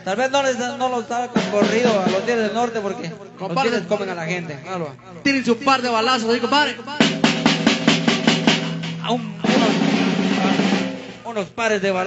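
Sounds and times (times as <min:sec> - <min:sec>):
dance music drum kit: 0:01.4 - 0:02.4, 0:07.0 - 0:11.3.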